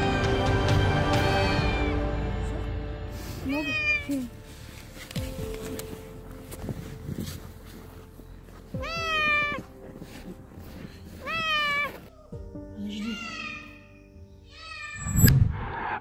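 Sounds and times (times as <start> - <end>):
cat meowing: 3.6 - 4.1, 8.8 - 9.7, 11.2 - 12.3.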